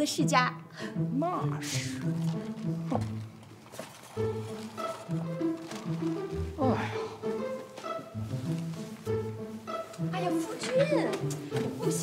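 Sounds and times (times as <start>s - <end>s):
music of held notes: 2.0s - 12.0s.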